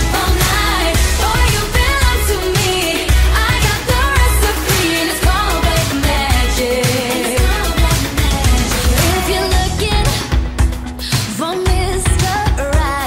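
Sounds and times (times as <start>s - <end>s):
pop song with singing: 0.0s - 13.0s.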